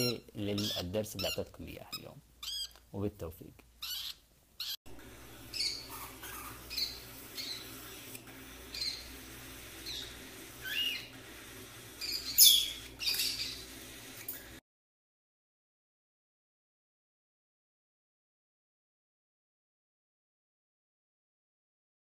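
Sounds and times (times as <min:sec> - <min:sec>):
parrot chirps and squawks: 0:00.0 - 0:02.8, 0:03.8 - 0:04.8, 0:05.4 - 0:09.2, 0:09.8 - 0:11.1, 0:12.0 - 0:13.8.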